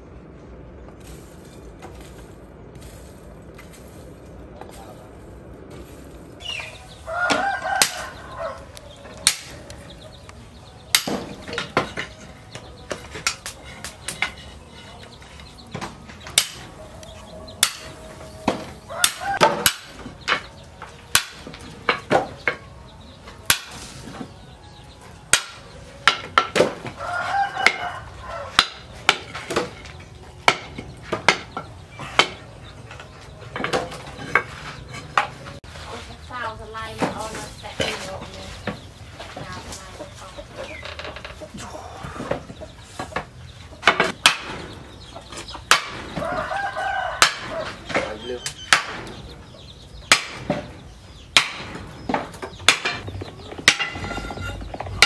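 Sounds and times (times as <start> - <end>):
rooster crowing: 6.8 - 9.2, 18.9 - 19.6, 26.8 - 28.9, 46.1 - 47.9
hammer striking metal on anvil: 9.1 - 10.1, 10.8 - 22.6, 23.4 - 26.8, 28.6 - 32.4, 47.2 - 49.2, 50.0 - 50.7, 51.4 - 54.8.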